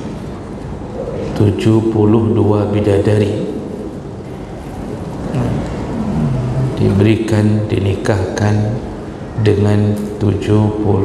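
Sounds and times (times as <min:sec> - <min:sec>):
low rumbling background noise: 0:00.0 - 0:11.0
man's voice murmuring: 0:05.3 - 0:07.3.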